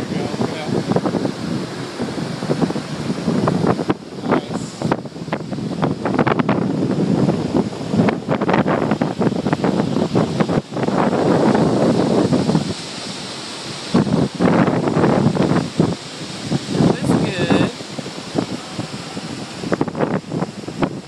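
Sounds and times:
ocean waves breaking: 0:00.0 - 0:21.0
wind buffeting microphone: 0:00.0 - 0:21.0.

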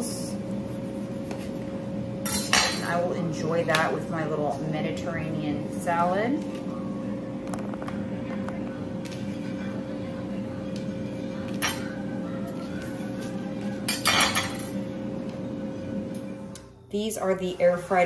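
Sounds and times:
steady low hum: 0:00.0 - 0:18.0
dishes and utensils clinking: 0:02.2 - 0:03.0, 0:11.4 - 0:14.9.

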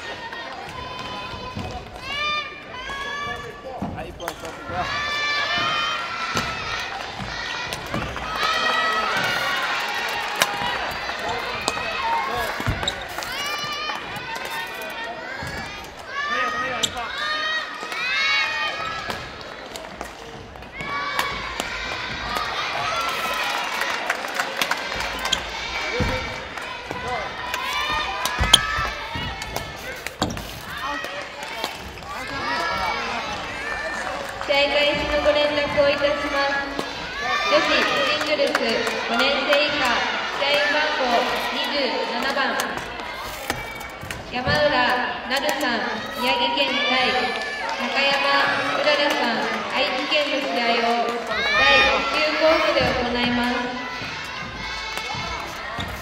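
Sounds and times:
rackets striking shuttlecocks: 0:27.5 - 0:30.6.

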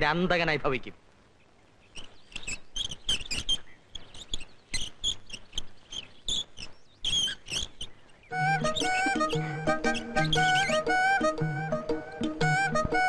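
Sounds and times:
metal pulley squeaking: 0:02.4 - 0:11.1.

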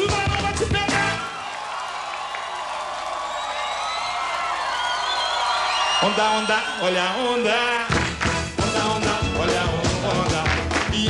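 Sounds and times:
crowd cheering and whooping: 0:01.0 - 0:07.9.

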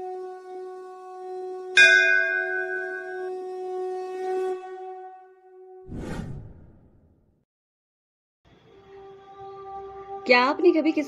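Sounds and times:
conch shell long note: 0:00.0 - 0:05.8
temple bell ringing: 0:01.8 - 0:03.4.

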